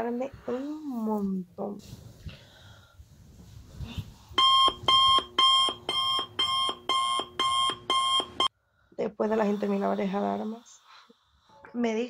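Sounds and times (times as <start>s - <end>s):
rustling of bedding: 0.6s - 5.2s
electronic alarm tone: 4.4s - 8.5s.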